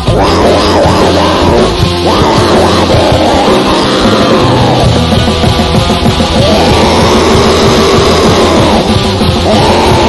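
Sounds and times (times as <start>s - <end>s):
distorted guitars: 0.0s - 10.0s
fast driving drums: 0.0s - 10.0s.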